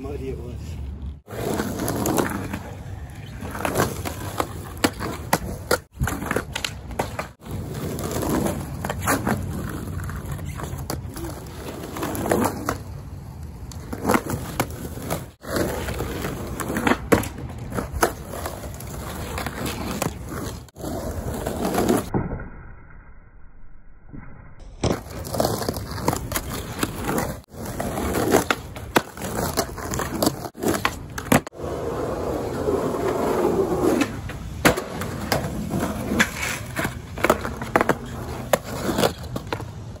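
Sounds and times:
skateboard wheels rolling on asphalt: 0.0s - 22.3s, 24.6s - 40.0s
skateboard clacks: 3.3s - 11.3s, 24.8s - 40.0s.

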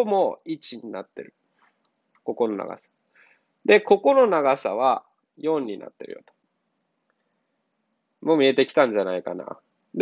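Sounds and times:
man speaking: 0.0s - 1.4s, 2.2s - 3.0s, 3.6s - 6.4s, 8.2s - 10.0s.

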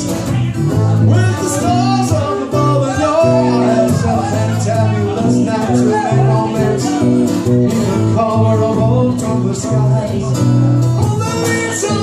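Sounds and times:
second guitar: 0.0s - 12.0s
strummed acoustic guitar: 0.0s - 12.0s.

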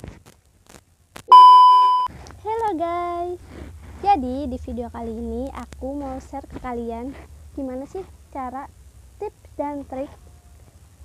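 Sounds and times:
steady test-tone beep: 1.3s - 2.1s.

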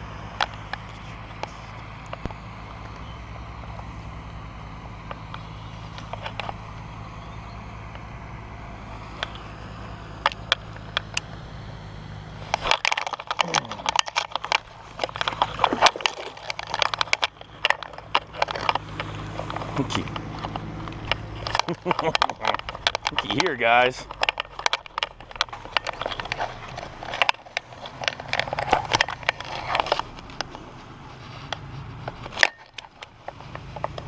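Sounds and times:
steady low hum: 0.0s - 34.0s
clicks knocks and rustling: 12.4s - 30.9s, 31.5s - 34.0s.

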